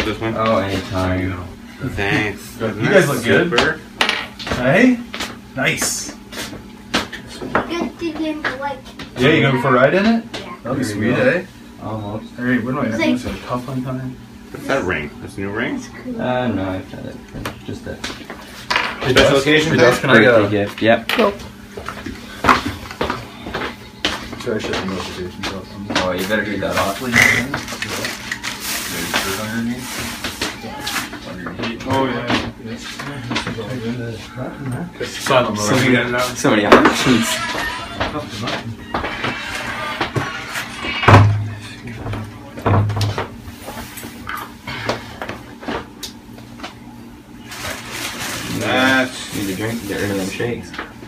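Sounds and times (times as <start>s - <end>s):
background talk in a room: 0.0s - 45.4s, 46.0s - 51.0s.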